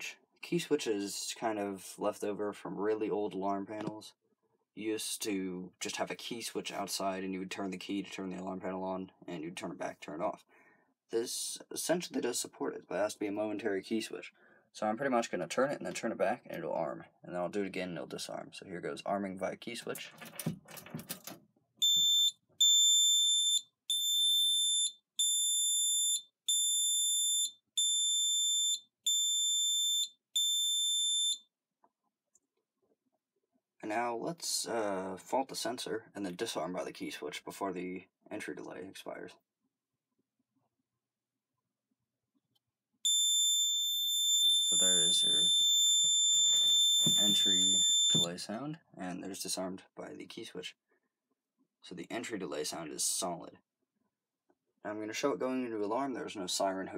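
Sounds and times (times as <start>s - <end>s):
alarm keypad beeping: 21.8s - 31.4s, 43.1s - 48.3s.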